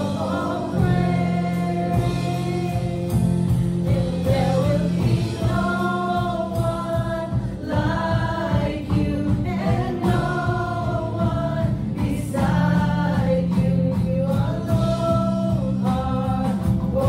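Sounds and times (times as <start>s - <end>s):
keyboard and guitars: 0.0s - 17.0s
men and women singing together: 0.0s - 17.0s.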